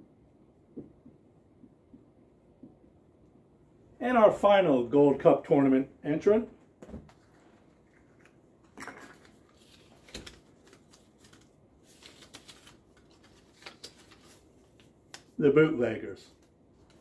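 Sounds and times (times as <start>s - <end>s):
paper rustling and crinkling: 7.1s - 15.4s
sharp paper crackles: 9.1s - 15.4s.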